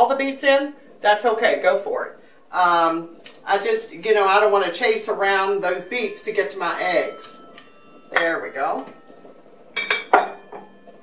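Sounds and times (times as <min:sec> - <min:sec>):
utensils and dishes clinking: 0:07.0 - 0:11.0.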